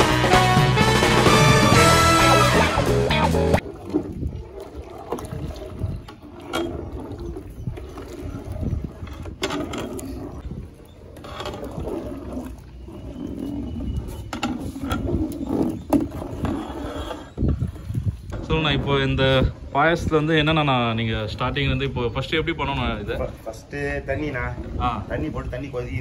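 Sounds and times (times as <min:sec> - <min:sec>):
metal ladle scraping pot: 0:01.2 - 0:19.6.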